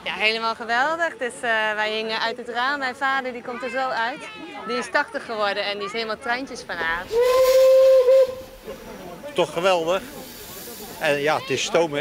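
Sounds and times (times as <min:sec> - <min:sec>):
steam hissing: 0:06.9 - 0:12.0
steam locomotive whistle: 0:07.1 - 0:08.7.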